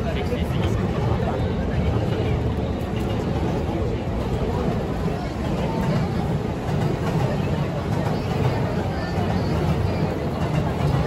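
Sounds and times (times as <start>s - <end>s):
low rumble of urban traffic: 0.0s - 11.0s
passers-by talking: 0.0s - 11.0s.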